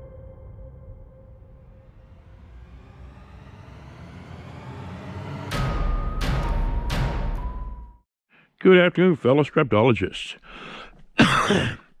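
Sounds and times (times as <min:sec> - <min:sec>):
deep bass hit: 0:00.0 - 0:08.0
rushing swell effect: 0:01.2 - 0:08.0.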